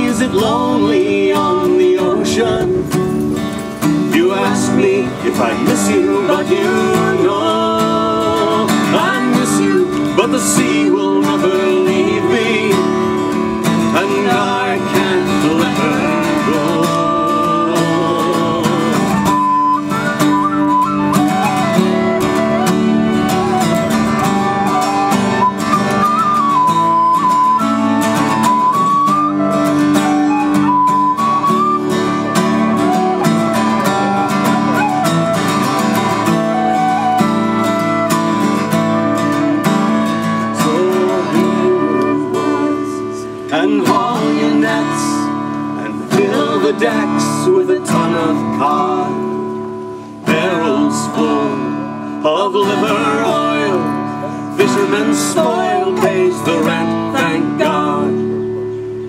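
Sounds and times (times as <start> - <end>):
acoustic guitar: 0.0 - 59.0
tin whistle melody: 10.7 - 45.4.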